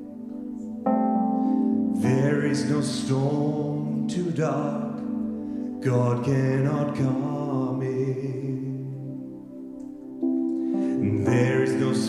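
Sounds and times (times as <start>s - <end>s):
piano chords: 0.0s - 12.0s
man singing a held note: 10.9s - 12.0s.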